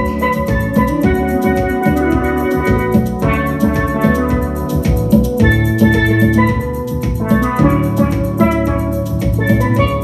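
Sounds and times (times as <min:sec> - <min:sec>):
backing track drums and bass: 0:00.0 - 0:10.0
steelpan melody: 0:00.0 - 0:10.0.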